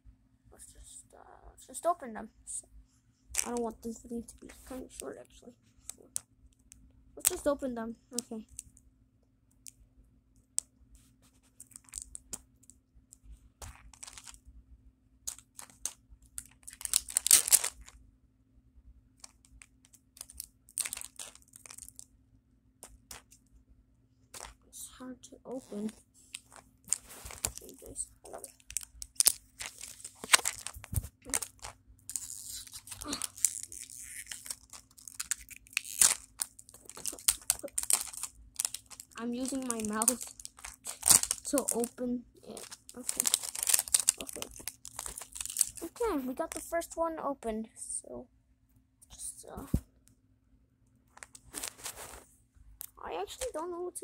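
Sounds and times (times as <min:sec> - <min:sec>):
plastic wrapping tearing and crinkling: 0:11.6 - 0:12.4, 0:13.6 - 0:14.4, 0:15.3 - 0:17.9, 0:20.2 - 0:22.0, 0:24.3 - 0:24.6, 0:25.6 - 0:46.6, 0:51.2 - 0:52.2.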